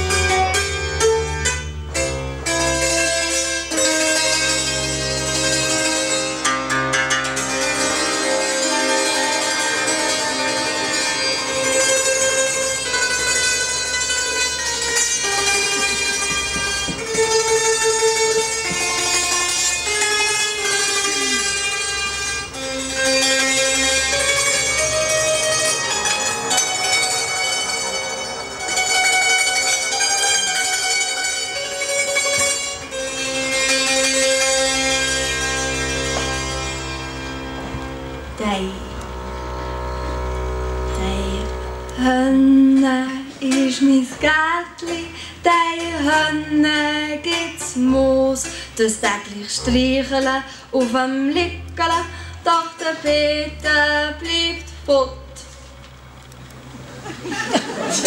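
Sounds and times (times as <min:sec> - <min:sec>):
hammered dulcimer playing: 0:00.0 - 0:43.9
double bass notes: 0:00.0 - 0:58.0.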